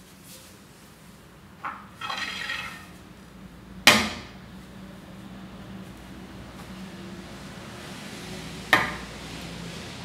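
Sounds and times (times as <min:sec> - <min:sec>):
cane scraping rustle: 0:01.9 - 0:03.0.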